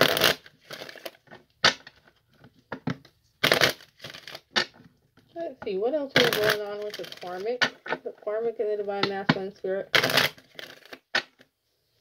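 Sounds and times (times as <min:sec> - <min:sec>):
cards being shuffled: 0:00.0 - 0:04.9, 0:06.2 - 0:08.0, 0:10.0 - 0:11.5.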